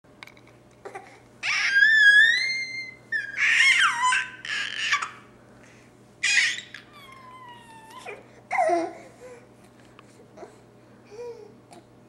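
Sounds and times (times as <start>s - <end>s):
baby squealing: 1.4s - 5.2s, 6.2s - 9.0s.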